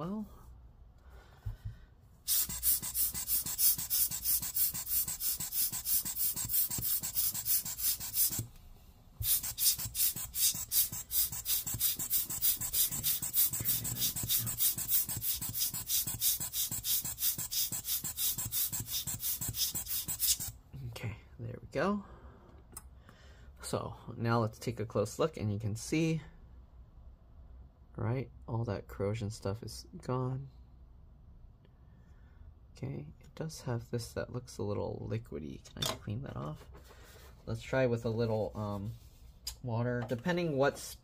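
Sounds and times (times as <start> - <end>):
air blower bulb puffing air: 1.6 - 8.5, 9.2 - 20.5.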